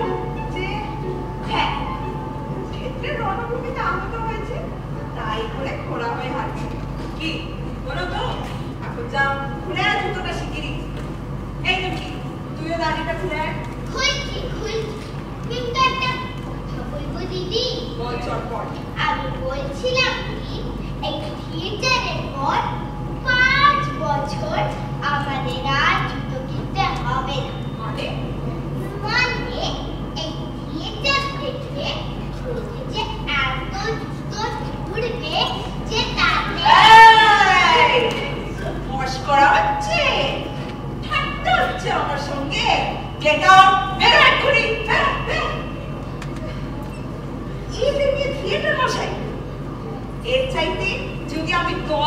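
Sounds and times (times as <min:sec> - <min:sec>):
children speaking dialogue: 0:00.0 - 0:52.0
steady low hum: 0:00.0 - 0:52.0.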